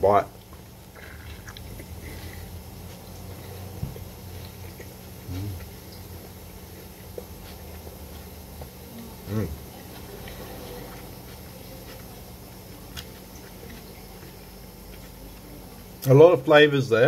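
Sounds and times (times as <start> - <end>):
steady low hum: 0.0 - 17.0
wet chewing and mouth clicks: 0.3 - 8.8, 9.9 - 16.1
man humming briefly: 5.2 - 5.7.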